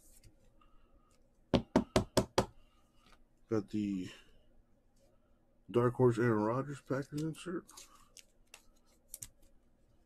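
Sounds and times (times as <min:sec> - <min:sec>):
sharp knocks on hard surface: 0:01.5 - 0:02.6.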